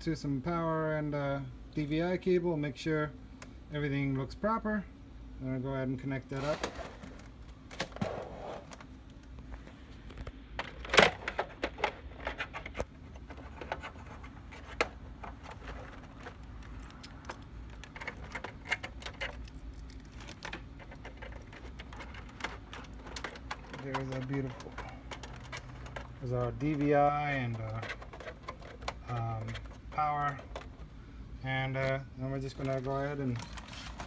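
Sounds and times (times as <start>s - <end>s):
plastic plugs clicking and rattling: 10.1s - 30.9s.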